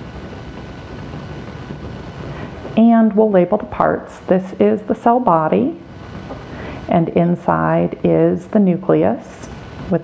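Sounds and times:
low background rumble: 0.0 - 10.0.

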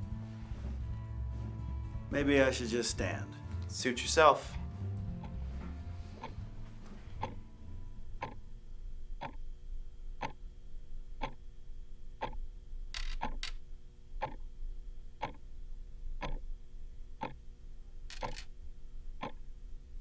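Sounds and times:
faint steady hum: 3.3 - 20.0
clock ticking: 6.2 - 6.4, 7.1 - 7.4, 8.2 - 8.4, 9.2 - 9.4, 10.2 - 10.4, 11.2 - 11.4, 12.2 - 12.4, 13.0 - 13.5, 14.2 - 14.4, 15.2 - 15.4, 16.2 - 16.4, 17.2 - 17.4, 19.2 - 19.4.

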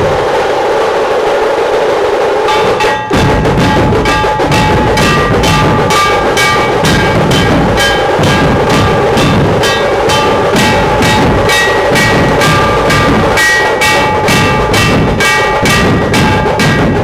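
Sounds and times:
procession drums beating: 0.0 - 17.0
ringing pitched tones: 2.4 - 17.0.

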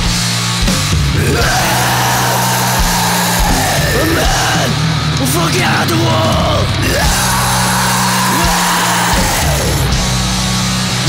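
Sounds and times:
distorted guitars: 0.0 - 11.0
drums: 0.0 - 11.0
high sliding guitar line: 0.0 - 11.0.

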